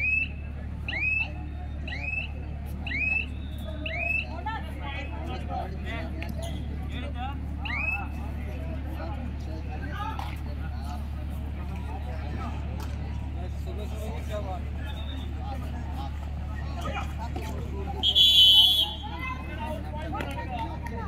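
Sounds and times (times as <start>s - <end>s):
scattered voices: 0.0s - 21.0s.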